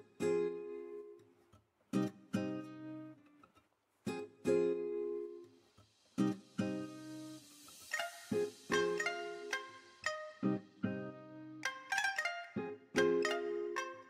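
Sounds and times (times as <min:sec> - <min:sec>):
strummed guitar chords: 0:02.0 - 0:03.2, 0:06.2 - 0:14.0.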